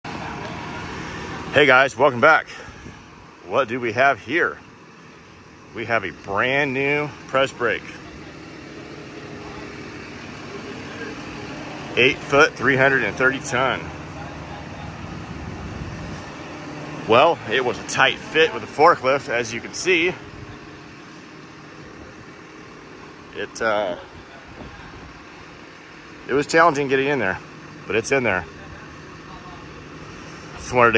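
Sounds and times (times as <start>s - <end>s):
diesel engine idling: 0.0s - 30.9s.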